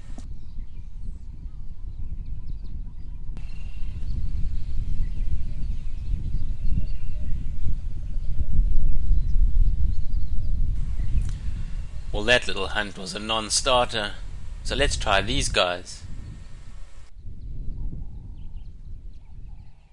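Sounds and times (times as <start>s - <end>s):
low uneven rumble: 3.4s - 17.1s.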